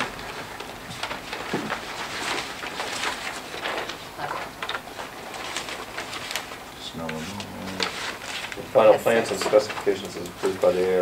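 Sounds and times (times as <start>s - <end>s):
paper being handled: 0.0s - 11.0s
man reading aloud: 6.4s - 11.0s.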